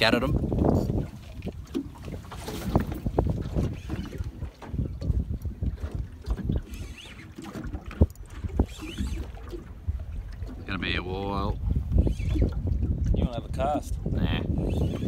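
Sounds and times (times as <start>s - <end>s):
water against boat hull: 0.0s - 15.0s
wind rumbling on microphone: 0.0s - 15.0s.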